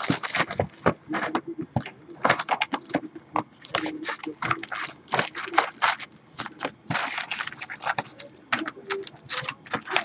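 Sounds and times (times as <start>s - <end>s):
card packs rustling and crinkling: 0.0s - 1.4s, 2.2s - 10.0s.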